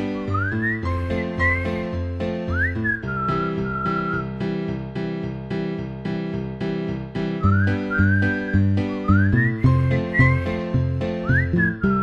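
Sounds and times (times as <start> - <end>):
whistled melody: 0.0 - 4.8, 7.1 - 12.0
bouncy plucked accompaniment: 0.0 - 12.0.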